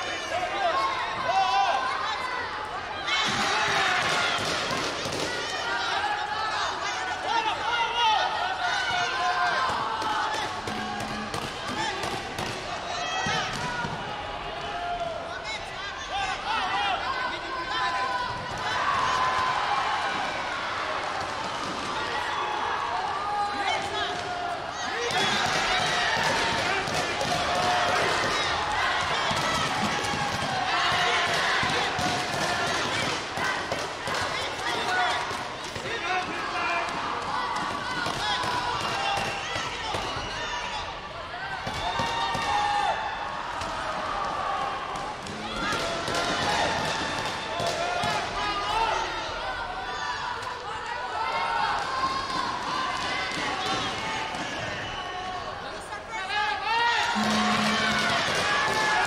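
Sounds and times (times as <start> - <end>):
voices calling out: 57.2 - 59.0.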